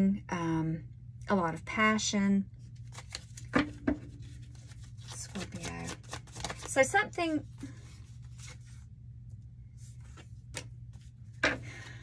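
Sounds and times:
cards being shuffled: 2.7 - 8.8, 9.8 - 11.1.

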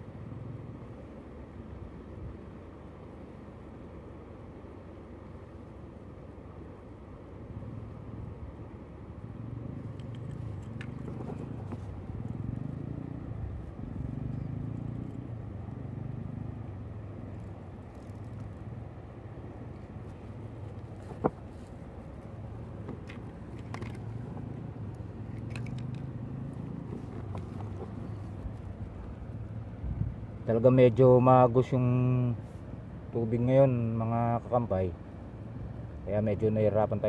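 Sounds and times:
low rumbling background noise: 0.0 - 37.0.

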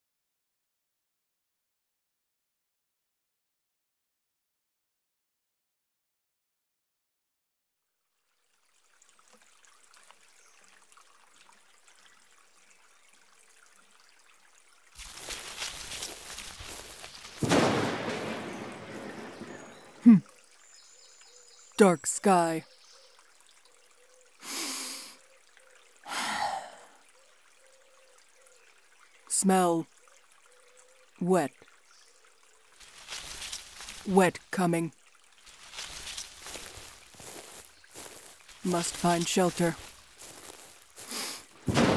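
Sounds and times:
rain-like noise: 7.9 - 41.9
thunder clap rumbling: 17.4 - 20.0, 41.6 - 41.9
woman humming: 20.0 - 20.2.

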